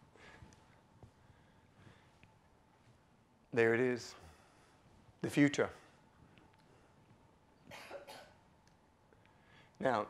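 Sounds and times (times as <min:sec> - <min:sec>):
faint short cough: 0:07.7 - 0:08.4.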